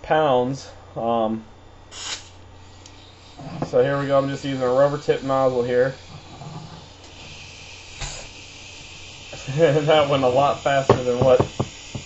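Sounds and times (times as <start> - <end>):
compressed air hissing: 1.9 - 12.0.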